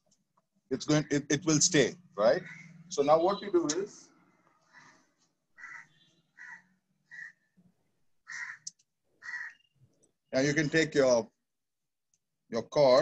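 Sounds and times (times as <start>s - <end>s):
faint bird calls: 2.4s - 2.9s, 4.6s - 7.5s, 8.3s - 9.7s.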